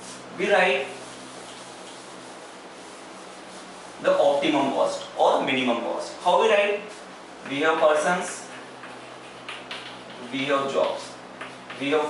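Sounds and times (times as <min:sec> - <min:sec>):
chalk wiped off blackboard: 0:00.9 - 0:04.0, 0:08.4 - 0:10.4.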